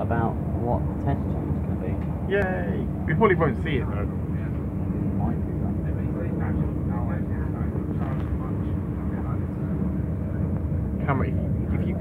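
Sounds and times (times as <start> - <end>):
faint steady hum: 0.0 - 12.0
train rumble inside carriage: 0.0 - 12.0.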